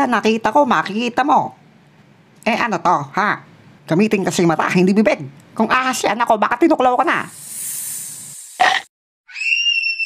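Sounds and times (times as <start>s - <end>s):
snake hissing: 7.2s - 8.9s
thin rising whistle: 9.3s - 10.0s.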